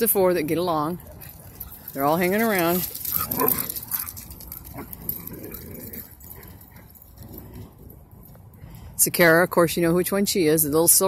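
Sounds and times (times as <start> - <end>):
dogs playing: 0.2 - 8.8.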